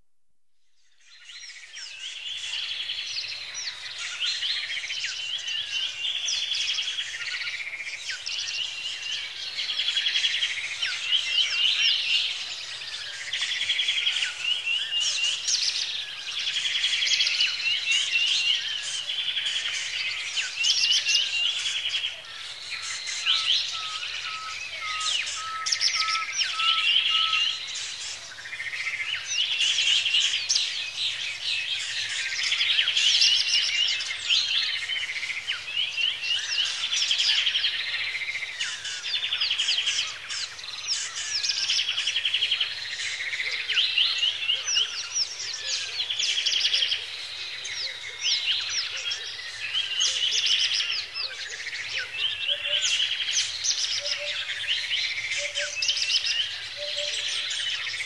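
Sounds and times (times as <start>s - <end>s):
songbirds singing and chirping: 0.6s - 58.0s
low piping bird notes: 22.8s - 28.2s.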